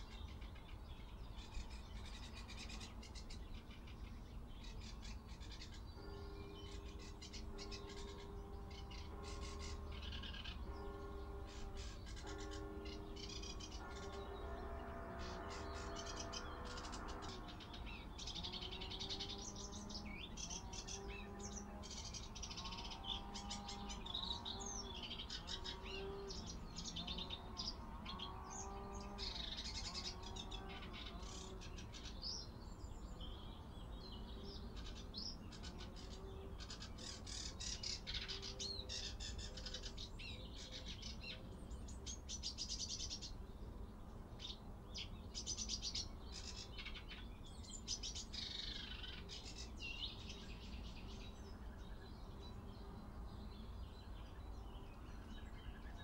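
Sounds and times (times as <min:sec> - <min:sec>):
songbirds chirping and trilling: 0:00.0 - 0:56.0.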